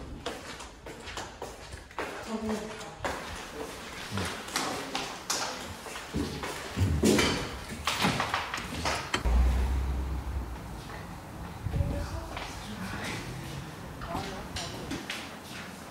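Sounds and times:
footsteps in a hallway: 0.0s - 8.4s
brief low rumble: 9.2s - 12.6s.

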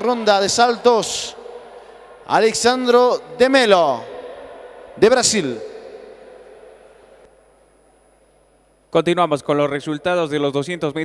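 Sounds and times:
thin high whine: 0.0s - 9.0s
announcement echo in hall: 0.0s - 11.0s
faint hall ambience: 0.0s - 11.0s.

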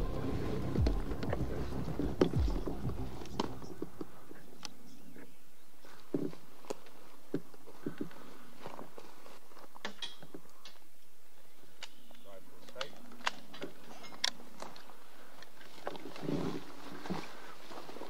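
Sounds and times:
background music with low tones: 0.0s - 5.6s
footsteps crunching dry grass: 0.0s - 10.5s, 13.4s - 18.0s
twigs snapping: 6.2s - 18.0s.

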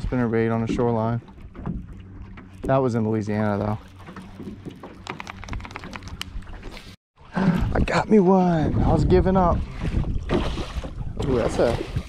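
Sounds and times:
wind and water wash: 0.0s - 12.0s.

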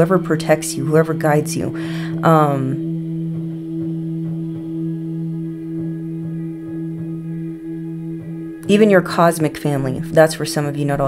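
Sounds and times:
meditation music drone: 0.0s - 11.0s.

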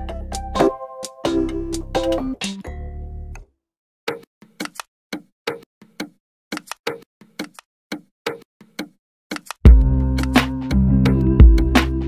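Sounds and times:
dry percussive knocks beat: 9.7s - 10.5s, 11.4s - 11.8s.

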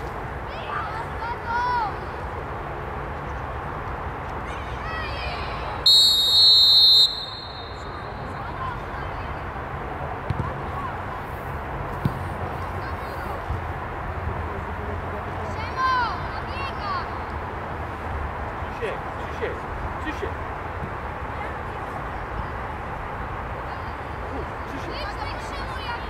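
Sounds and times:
referee's whistle blast: 5.9s - 8.2s.

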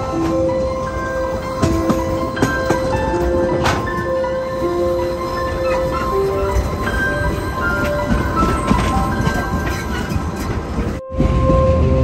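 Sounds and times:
soft piano music: 0.0s - 12.0s
train rumbling on rails: 0.0s - 12.0s.

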